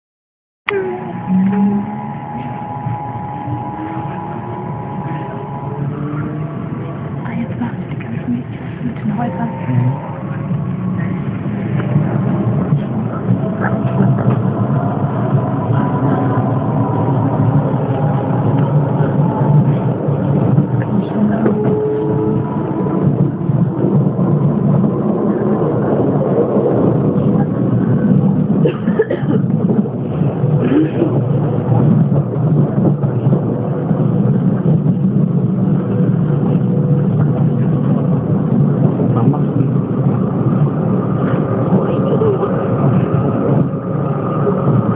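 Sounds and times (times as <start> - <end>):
train rumbling with faint whine: 0.7 - 44.9.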